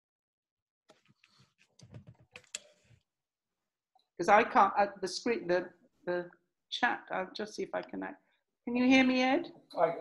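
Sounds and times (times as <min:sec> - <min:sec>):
faint keyboard tapping: 0:00.9 - 0:02.9.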